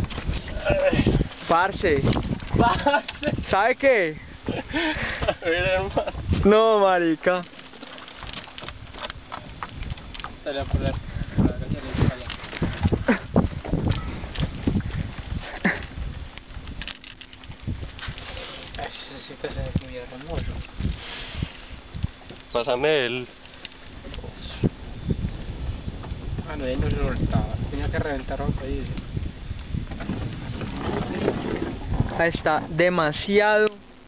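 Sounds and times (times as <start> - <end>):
steady low rumble: 0.0 - 34.0
knocks against a boat: 29.9 - 31.9.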